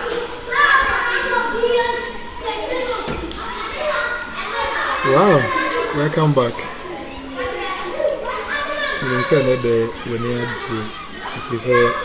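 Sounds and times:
children talking and playing: 0.0 - 12.0.

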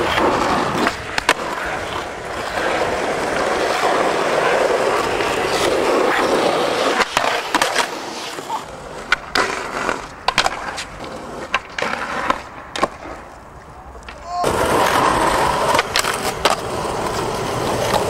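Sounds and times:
skateboard popping and landing clacks: 0.0 - 18.0
skateboard wheels rolling on concrete: 0.0 - 18.0
skateboard hitting concrete ledge: 9.0 - 13.3, 14.1 - 18.0.

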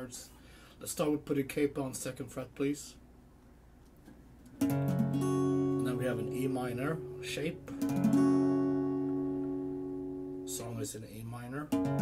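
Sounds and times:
acoustic guitar chord ringing: 4.6 - 10.8, 11.7 - 12.0.

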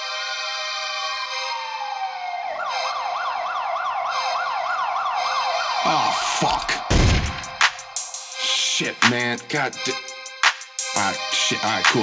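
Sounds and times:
siren yelping: 0.5 - 8.0.

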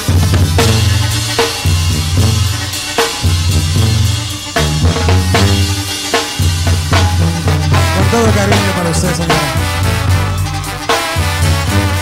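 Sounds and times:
deep bass line: 0.0 - 2.7, 3.3 - 12.0
drum kit playing: 0.0 - 12.0.

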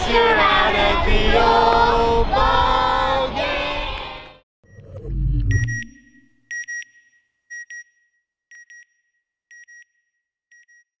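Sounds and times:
short double beeps: 4.7 - 7.9.

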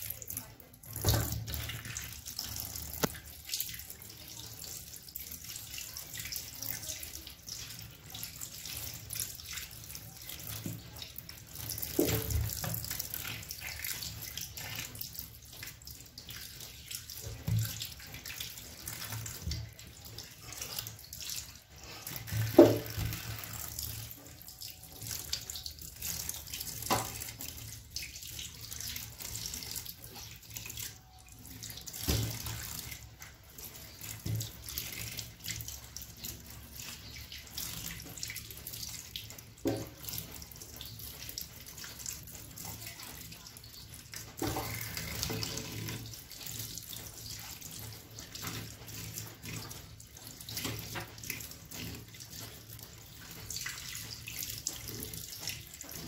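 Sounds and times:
hands rinsing eels in basket: 0.0 - 56.0
tap water running into sink: 0.0 - 56.0.

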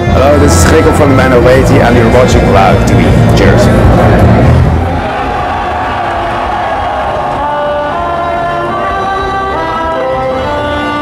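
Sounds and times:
band instruments holding notes: 0.0 - 11.0
concert crowd noise: 0.0 - 11.0
loud music: 0.0 - 11.0.

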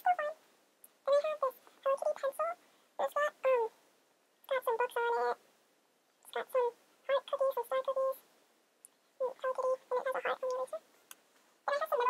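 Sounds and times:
high-pitched voice chattering: 0.0 - 0.4, 1.1 - 3.7, 4.5 - 5.4, 6.3 - 8.2, 9.2 - 10.8, 11.7 - 12.0.

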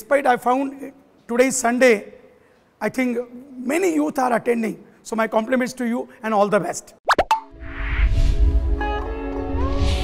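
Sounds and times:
rising plop sound effects: 7.1 - 7.8
whoosh: 7.2 - 8.8.

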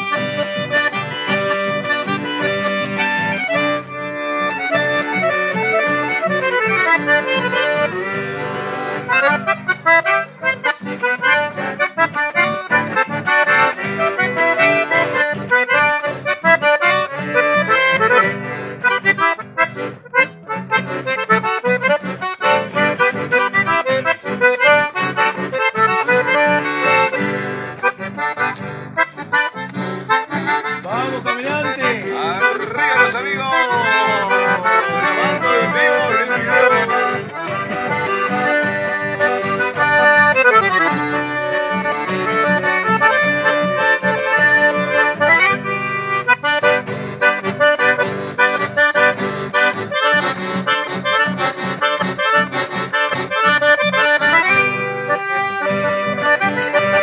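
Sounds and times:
accordion melody: 0.0 - 57.0
acoustic guitar strumming: 0.0 - 57.0.

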